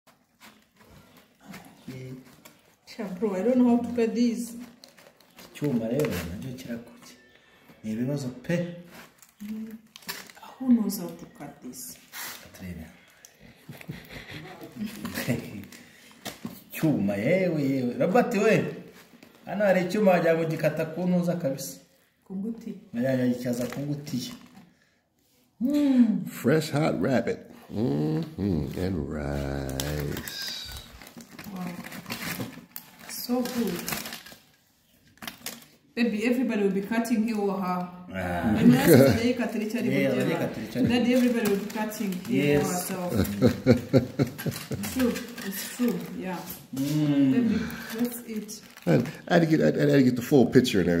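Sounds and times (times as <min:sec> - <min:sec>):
aluminium foil crinkling: 0:00.1 - 0:21.4, 0:23.2 - 0:24.7, 0:28.5 - 0:37.4, 0:38.6 - 0:49.8
people talking: 0:27.7 - 0:30.8, 0:36.2 - 0:51.0.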